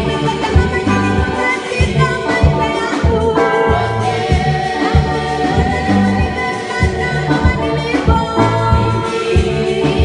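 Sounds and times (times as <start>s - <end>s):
bass notes: 0.0s - 10.0s
drum beats: 0.0s - 10.0s
gospel choir singing: 0.0s - 10.0s
guitar: 0.0s - 10.0s
keyboard: 0.0s - 10.0s.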